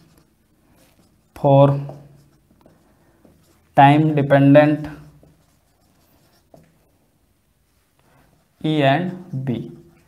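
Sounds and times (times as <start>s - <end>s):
marker writing on whiteboard: 0.0s - 10.0s.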